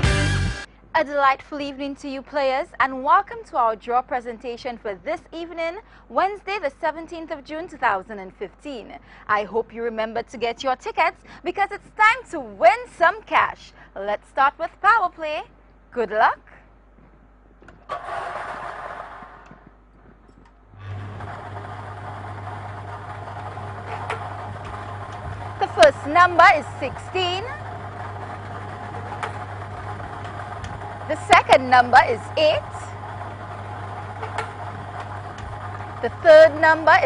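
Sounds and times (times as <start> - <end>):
machine motor humming: 17.0 - 37.0.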